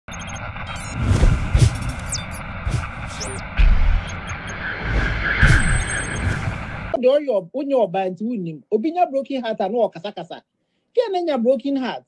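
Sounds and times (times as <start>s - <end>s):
short high beeps: 0.1s - 1.1s, 1.7s - 2.4s, 3.1s - 6.5s
hissing whoosh: 0.8s - 7.0s.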